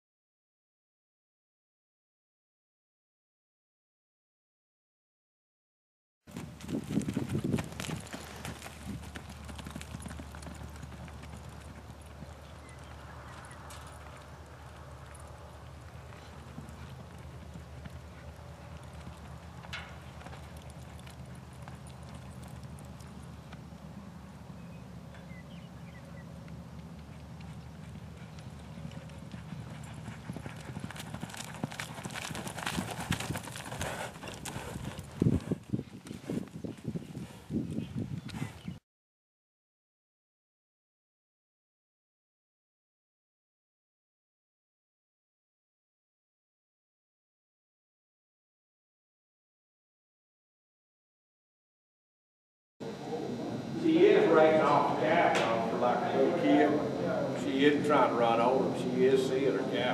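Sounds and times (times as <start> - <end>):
horse hoofbeats on dirt: 6.3 - 38.8
steady low hum: 8.2 - 31.5, 52.8 - 59.9.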